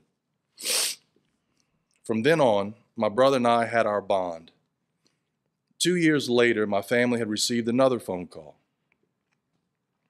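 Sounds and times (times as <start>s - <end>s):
man's sharp intake of breath: 0.6s - 1.0s.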